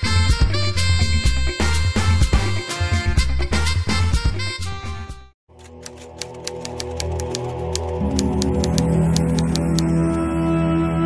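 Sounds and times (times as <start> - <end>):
upbeat music: 0.0 - 5.3, 6.0 - 10.9
typewriter keystroke clicks: 5.6 - 9.9.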